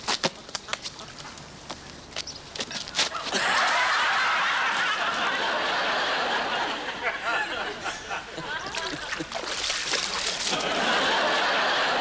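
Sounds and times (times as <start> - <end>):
audience laughing: 3.3 - 9.4, 10.4 - 12.0.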